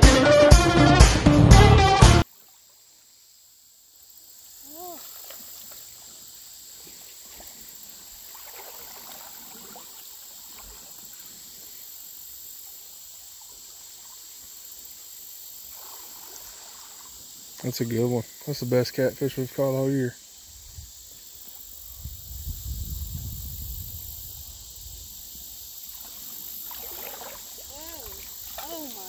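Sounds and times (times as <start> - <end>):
stream water running: 2.2 - 29.0
high-pitched insect drone: 2.3 - 29.0.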